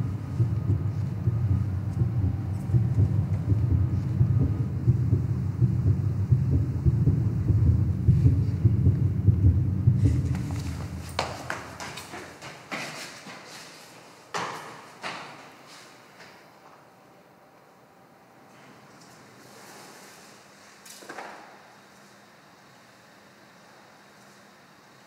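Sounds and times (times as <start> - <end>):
deep steady rumble: 0.0 - 11.2.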